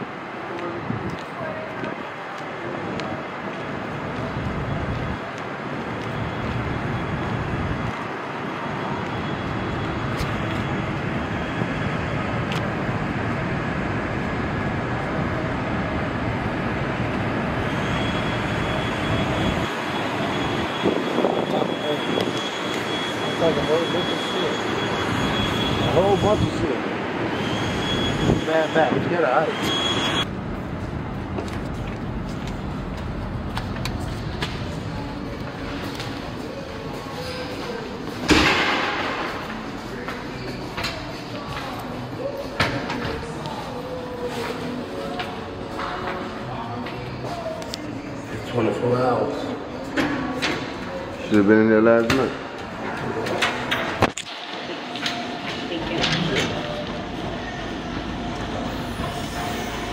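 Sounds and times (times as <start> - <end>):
distant traffic: 0.0 - 59.9
voices talking: 17.6 - 30.3, 34.2 - 59.9.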